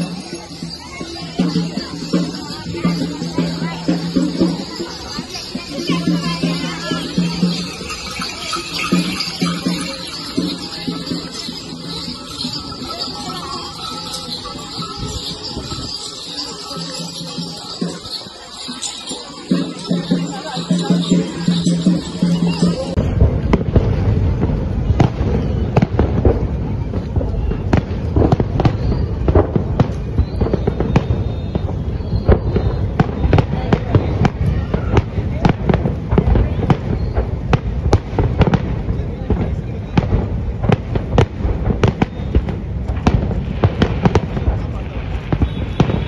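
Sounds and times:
music: 0:00.0 - 0:36.1
fireworks bangs and crackles: 0:00.0 - 0:46.0.

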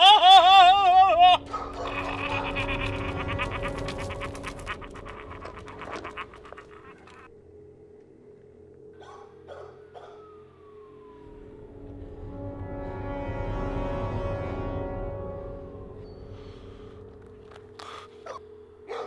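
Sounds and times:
low sustained drone tones: 0:00.0 - 0:18.9.

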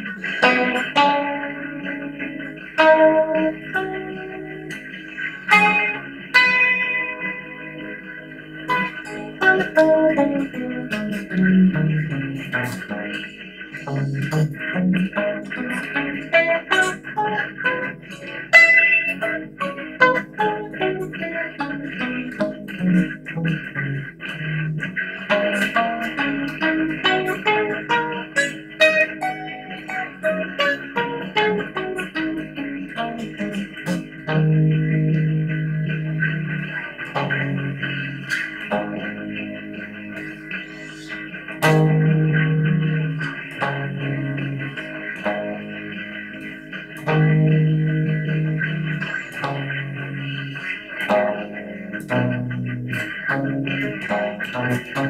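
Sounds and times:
guitar playing scale: 0:00.0 - 0:55.0.

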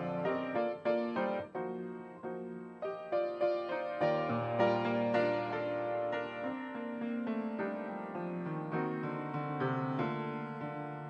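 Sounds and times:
piano playing: 0:00.0 - 0:11.0.

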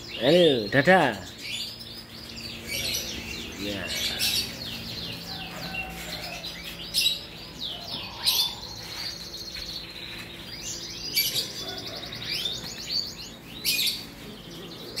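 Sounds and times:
canaries singing: 0:00.0 - 0:15.0.

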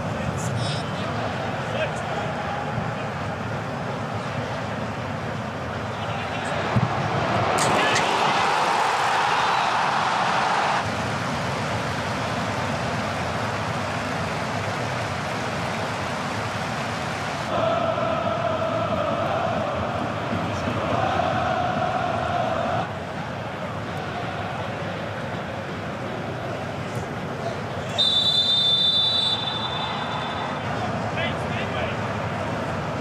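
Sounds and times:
stadium crowd cheering: 0:01.0 - 0:33.0
crowd chanting: 0:06.5 - 0:10.8, 0:17.5 - 0:25.5.

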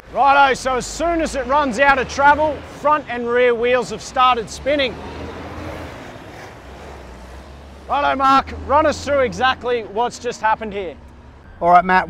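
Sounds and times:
engine running at low revs: 0:00.0 - 0:11.6.

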